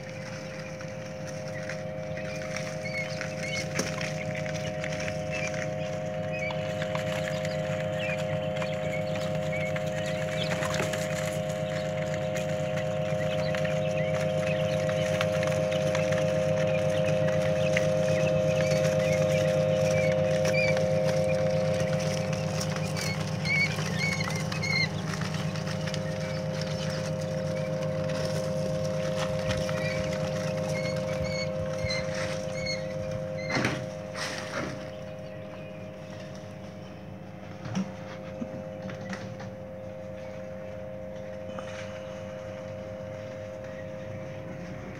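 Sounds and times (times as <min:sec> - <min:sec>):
chicks peeping: 0:00.0 - 0:44.8
low mechanical hum: 0:00.0 - 0:44.9.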